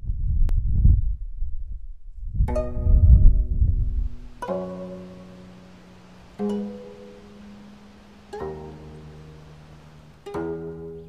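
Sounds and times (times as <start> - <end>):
deep rumble: 0.0 - 4.4.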